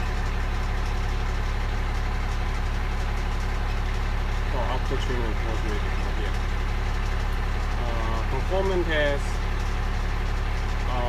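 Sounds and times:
diesel truck engine idling: 0.0s - 11.0s.

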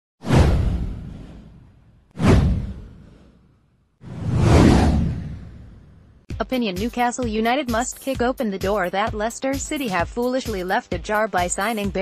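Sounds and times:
deep downward whoosh: 0.2s - 3.4s, 4.0s - 6.2s.

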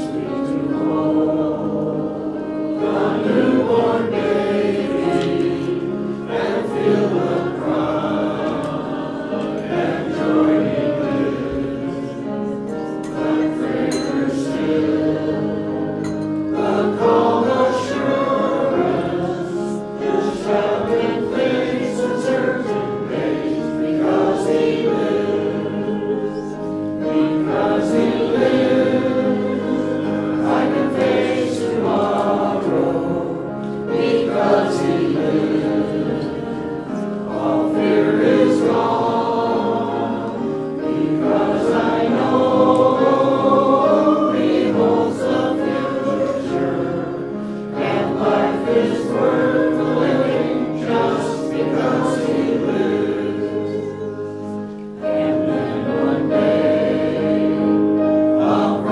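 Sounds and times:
choir singing church music: 0.0s - 58.9s.

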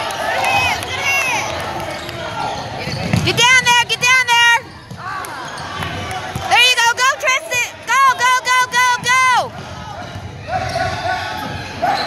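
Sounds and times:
players running on gym court: 0.0s - 12.0s
voices calling in gym: 0.0s - 12.0s
shoe squeak: 2.0s - 3.6s, 4.4s - 6.0s, 11.6s - 12.0s.

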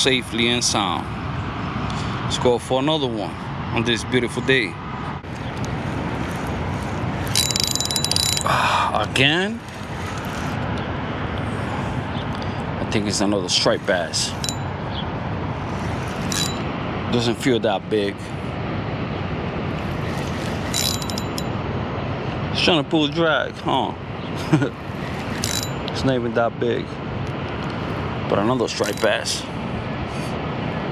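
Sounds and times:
steady rushing noise: 3.1s - 30.9s
fishing reel clicking whir: 5.3s - 8.5s, 9.6s - 10.6s, 13.8s - 14.6s, 15.6s - 16.6s, 19.8s - 21.5s, 24.9s - 25.9s, 28.8s - 29.1s.

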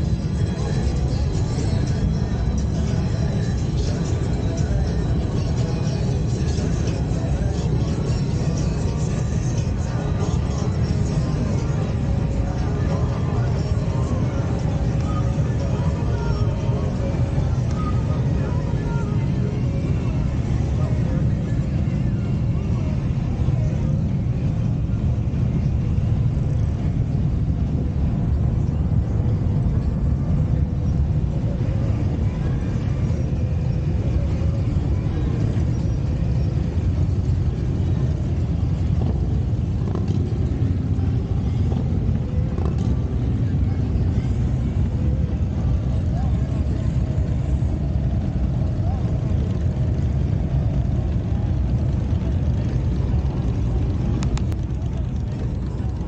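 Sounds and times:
motorcycles passing: 0.0s - 56.0s
vehicle engines rumbling past: 0.0s - 56.0s.

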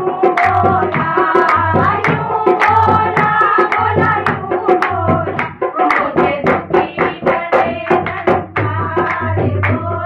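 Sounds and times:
hand drum: 0.0s - 10.0s
women singing devotional song: 0.0s - 10.0s
hand-clapping: 0.2s - 10.0s.

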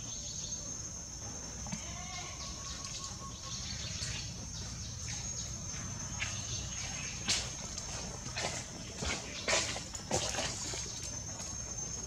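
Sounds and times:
insect buzzing: 0.0s - 7.8s
insect chirps: 0.0s - 12.0s.

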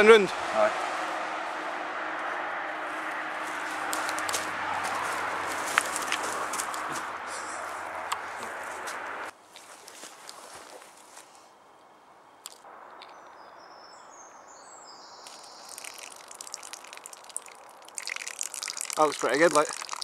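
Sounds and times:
faint outdoor background noise: 0.0s - 20.0s.

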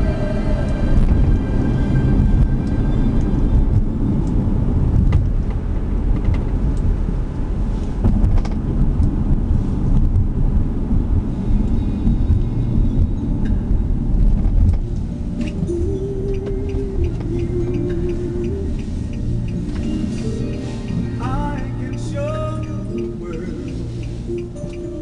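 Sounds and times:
car interior rumble while driving: 0.0s - 25.0s.

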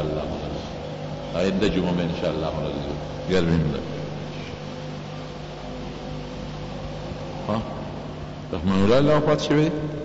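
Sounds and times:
steady low hum: 0.0s - 10.0s
man speaking: 1.4s - 4.6s, 8.5s - 10.0s.

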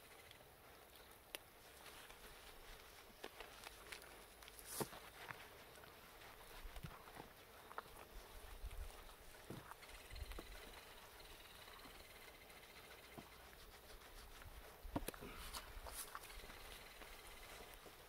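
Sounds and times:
hands rubbing wet lather: 12.5s - 17.2s.

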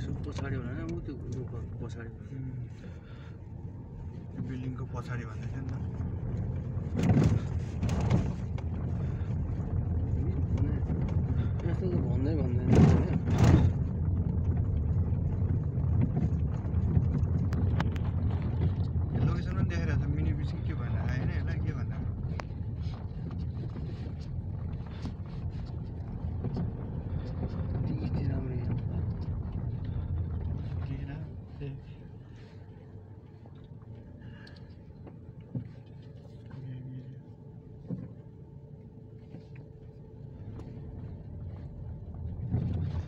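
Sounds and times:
car engine and tyres rumbling: 0.0s - 43.0s.

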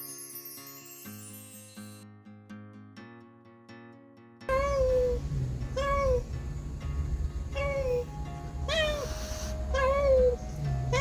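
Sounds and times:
cat meowing: 4.5s - 6.3s, 7.5s - 11.0s
background music: 4.5s - 11.0s.

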